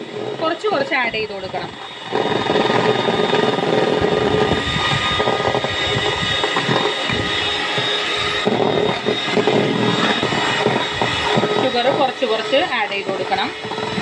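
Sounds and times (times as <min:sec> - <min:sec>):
electric hand mixer whipping: 0:00.0 - 0:14.0.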